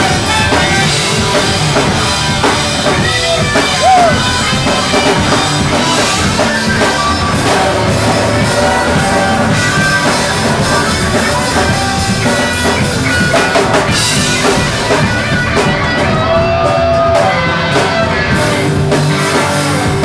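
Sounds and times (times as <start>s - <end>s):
drum kit: 0.0s - 20.0s
electric guitars: 0.0s - 20.0s.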